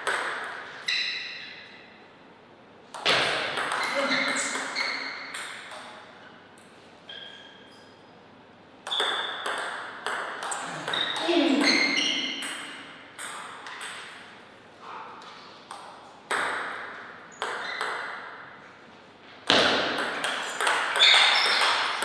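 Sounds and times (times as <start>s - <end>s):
ball bouncing: 0.0s - 0.8s, 2.9s - 6.2s, 8.8s - 14.4s, 15.2s - 18.5s, 19.4s - 22.0s
table tennis ball pinging: 0.0s - 1.7s, 2.9s - 7.3s, 8.8s - 14.4s, 15.7s - 18.5s, 19.5s - 22.0s.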